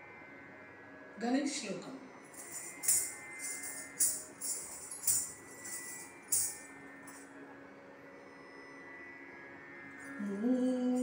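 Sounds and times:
ankle bells jingling: 2.3 - 7.2.

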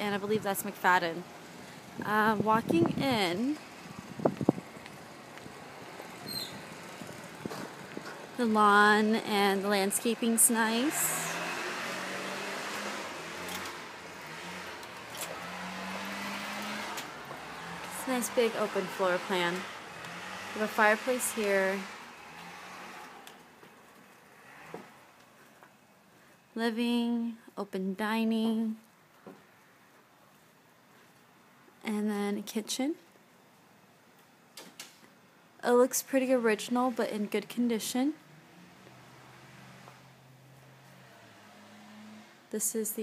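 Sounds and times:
outdoor background noise: 0.0 - 43.0.

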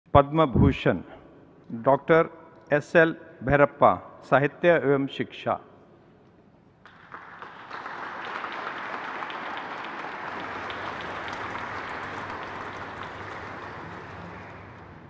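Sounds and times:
audience applauding: 6.8 - 15.0.

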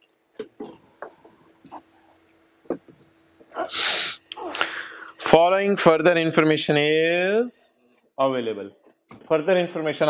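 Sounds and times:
soft breath noise: 3.5 - 5.2
person's breathy burst of air: 3.6 - 5.2.

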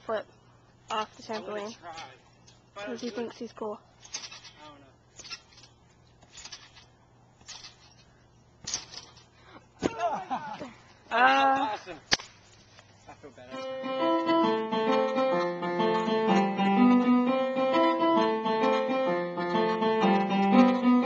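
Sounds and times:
electronic keyboard piano notes: 13.5 - 21.0.

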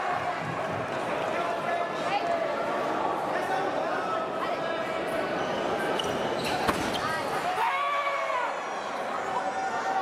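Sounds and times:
chatter of voices in hall: 0.0 - 10.0.

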